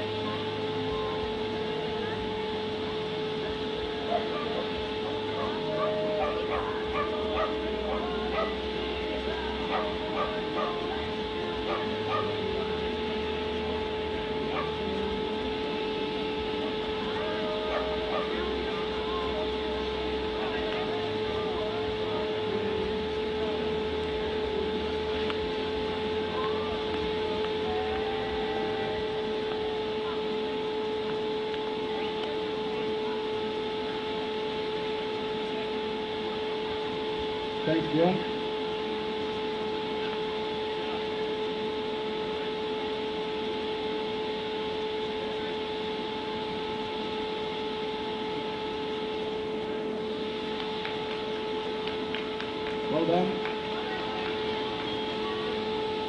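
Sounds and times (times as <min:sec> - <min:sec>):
faint distant voices: 0:00.0 - 0:56.0
steady hum: 0:00.0 - 0:56.0.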